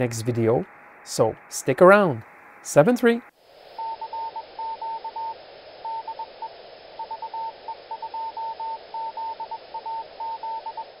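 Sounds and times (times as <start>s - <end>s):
radio receiver hiss: 0.0s - 11.0s
morse code tone: 3.8s - 11.0s.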